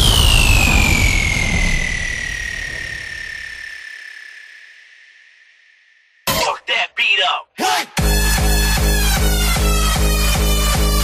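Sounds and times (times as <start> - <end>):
low rumble: 0.0 - 4.0
synthesized falling whistle sweep: 0.0 - 6.0
noise wash: 0.0 - 6.2.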